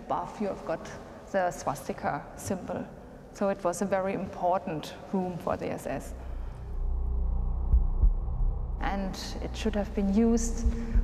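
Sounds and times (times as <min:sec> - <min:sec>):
low dark drone: 0:06.1 - 0:11.0
deep heartbeat-like thumps: 0:06.6 - 0:11.0.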